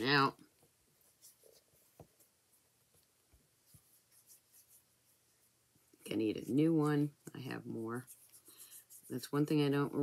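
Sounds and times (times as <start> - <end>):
brush pen strokes on cardstock: 1.0 - 2.8, 3.5 - 10.0.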